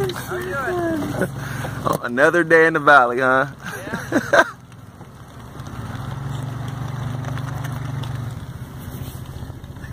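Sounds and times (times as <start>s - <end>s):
car engine humming: 0.0s - 9.9s.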